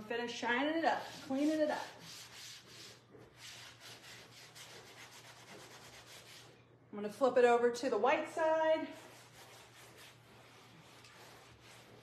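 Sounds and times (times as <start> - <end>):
cloth rubbing leather: 9.0 - 12.0.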